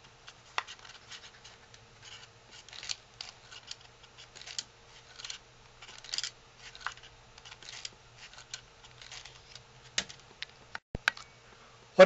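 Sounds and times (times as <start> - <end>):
paper crinkling and rustling: 0.5 - 10.2.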